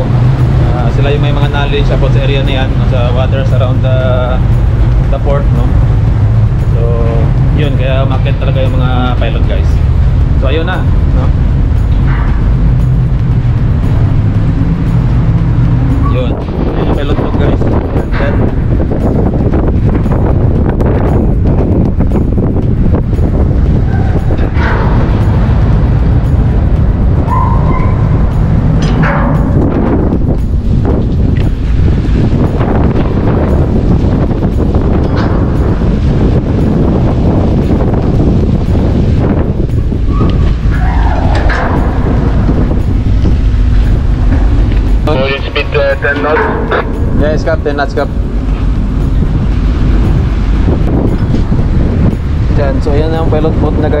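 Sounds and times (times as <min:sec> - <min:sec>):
sea rushing along hull: 0:00.0 - 0:54.0
wind buffeting microphone: 0:00.0 - 0:54.0.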